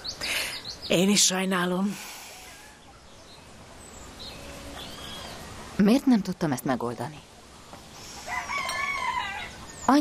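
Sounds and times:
bird chirp: 0.0 - 6.3, 7.1 - 10.0
low steady hiss: 0.0 - 10.0.

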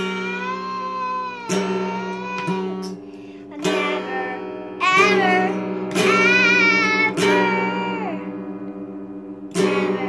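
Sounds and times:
girl singing held notes: 0.0 - 8.3
acoustic guitar strum: 0.0 - 10.0.

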